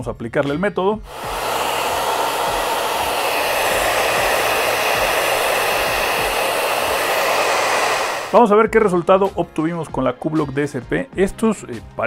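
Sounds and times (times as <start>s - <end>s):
hair dryer running: 1.1s - 8.4s.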